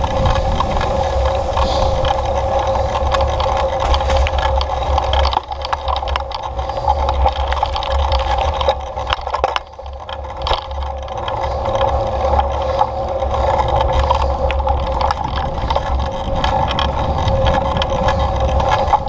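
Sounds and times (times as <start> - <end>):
knocks and rattles from bumps: 0.0 - 19.0
steady vehicle hum: 0.0 - 19.0
wind rumbling on microphone: 0.0 - 19.0.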